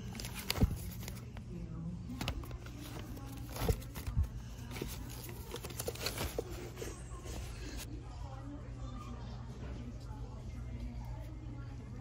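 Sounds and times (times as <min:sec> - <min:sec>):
records flipped through in crate: 0:02.1 - 0:06.8.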